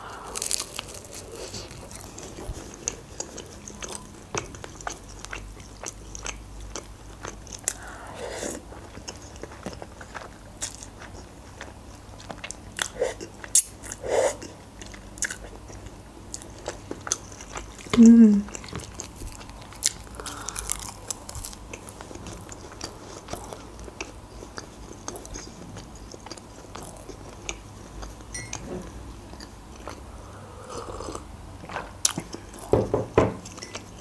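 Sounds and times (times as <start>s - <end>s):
biting and chewing food: 0.2s - 30.1s.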